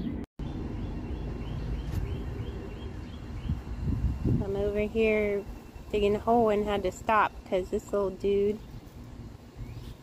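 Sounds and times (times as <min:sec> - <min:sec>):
low steady rumble: 0:00.4 - 0:10.0.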